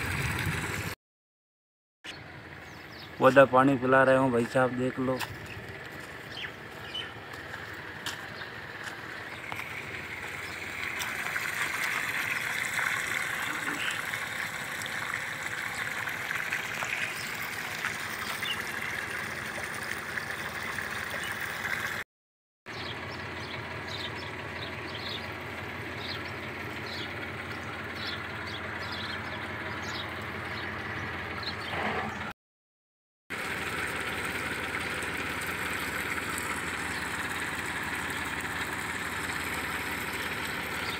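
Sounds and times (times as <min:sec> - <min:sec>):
engine-driven pump running: 0:00.0 - 0:01.0, 0:02.1 - 0:22.0, 0:22.7 - 0:32.3, 0:33.3 - 0:40.9
water pouring from pipe: 0:00.0 - 0:01.0, 0:08.7 - 0:22.0, 0:33.3 - 0:40.9.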